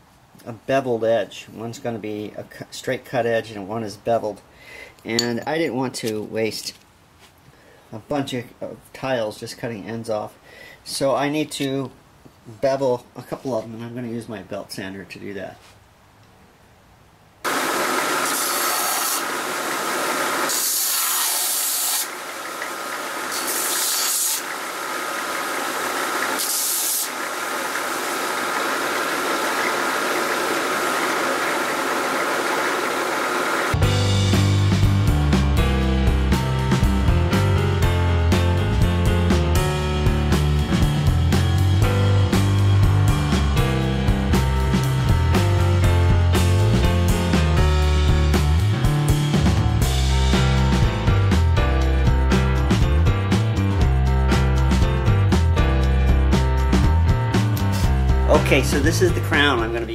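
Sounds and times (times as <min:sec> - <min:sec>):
belt sander whine: 0:17.5 - 0:33.8
tile grinding on sander belt: 0:17.5 - 0:33.8
background music with drum beat: 0:33.8 - 0:59.7.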